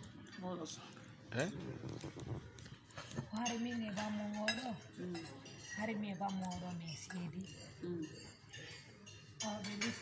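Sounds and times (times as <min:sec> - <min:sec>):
cutlery and dishes clinking: 0:02.0 - 0:10.0.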